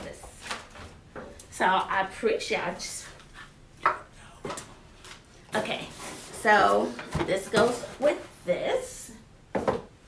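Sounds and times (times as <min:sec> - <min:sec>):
items knocking on tabletop: 0:09.5 - 0:09.9.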